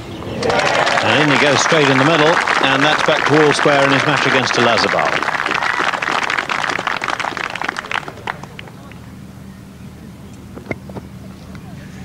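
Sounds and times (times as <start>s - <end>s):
crowd applauding: 0.3s - 9.0s.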